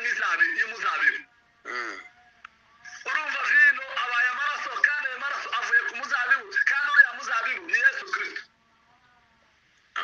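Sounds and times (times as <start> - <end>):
man speaking over telephone line: 0.0 - 1.3, 2.9 - 8.5.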